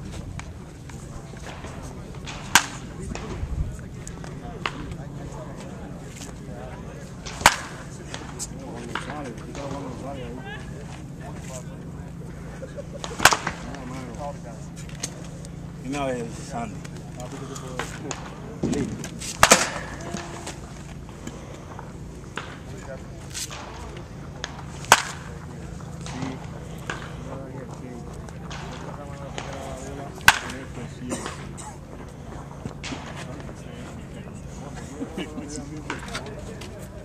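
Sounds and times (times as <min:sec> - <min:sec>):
wooden bat hitting ball: 0:01.4 - 0:03.4, 0:07.2 - 0:09.8, 0:13.0 - 0:13.9, 0:17.8 - 0:20.6, 0:23.5 - 0:27.2, 0:30.2 - 0:31.4.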